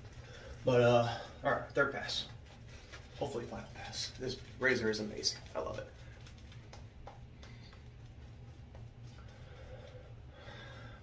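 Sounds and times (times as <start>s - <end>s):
shaving brush on skin: 0.0s - 0.9s, 1.6s - 10.3s
low steady hum: 0.0s - 11.0s.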